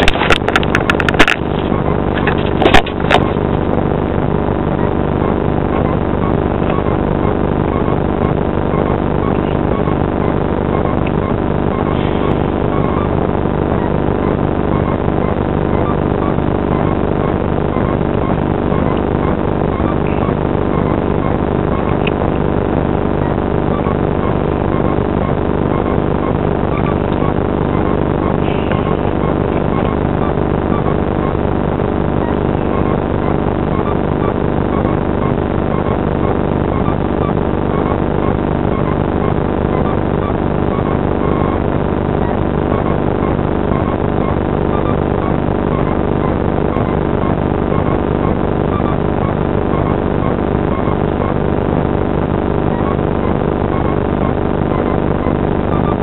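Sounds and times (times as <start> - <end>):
steady engine drone: 0.0 - 56.0.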